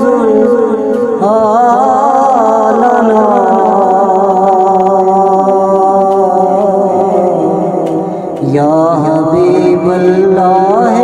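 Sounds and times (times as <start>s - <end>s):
man singing into microphone: 0.0s - 11.0s.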